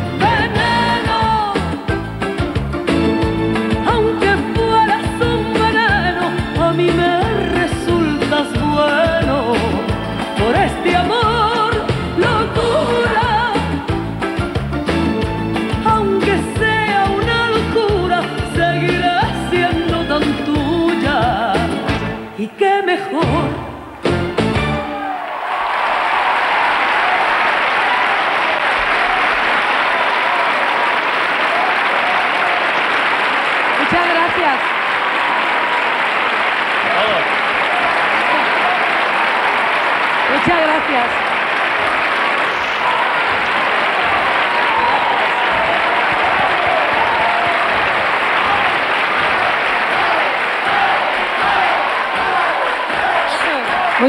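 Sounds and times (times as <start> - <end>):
audience applauding: 24.8 - 54.0
crowd shouts: 24.8 - 54.0.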